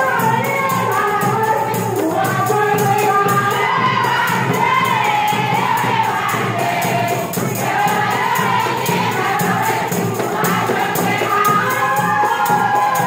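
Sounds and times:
jingling percussion beat: 0:00.0 - 0:13.0
women singing in chorus: 0:00.0 - 0:13.0.

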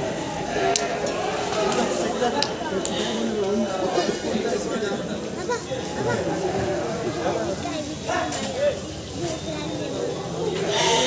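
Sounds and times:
crowd chatter: 0:00.0 - 0:11.0
goats bleating: 0:10.6 - 0:11.0.

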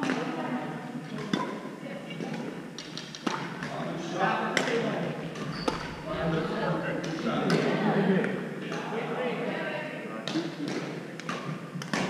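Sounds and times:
players' voices echoing: 0:03.3 - 0:11.2
racket hitting shuttlecock: 0:10.3 - 0:12.0.

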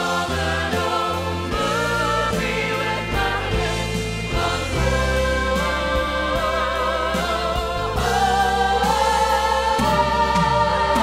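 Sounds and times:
orchestra with low bass: 0:00.0 - 0:11.0.

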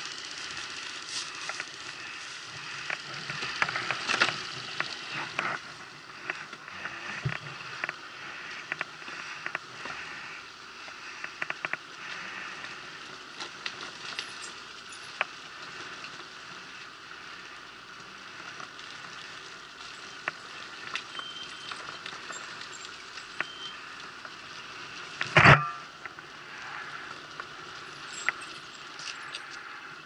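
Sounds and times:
steady hiss: 0:00.0 - 0:30.0
clicks and crackles: 0:00.4 - 0:08.0, 0:10.8 - 0:12.8, 0:13.4 - 0:16.2, 0:18.5 - 0:24.4, 0:25.1 - 0:26.2.

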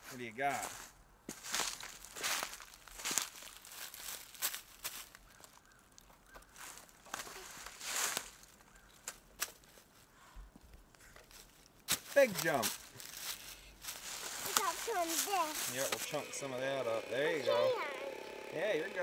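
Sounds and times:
footsteps crunching dry leaves: 0:00.1 - 0:09.8, 0:11.3 - 0:16.3.

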